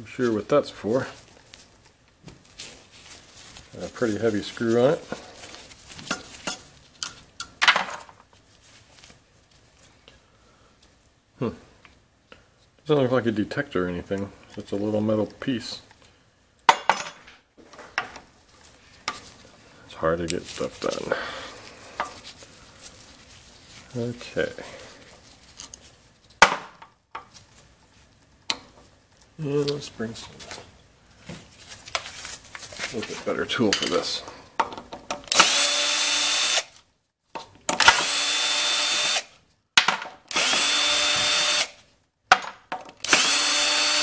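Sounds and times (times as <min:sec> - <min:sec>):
screwdriver clicking on screws: 0:40.3 - 0:41.8, 0:43.0 - 0:44.0.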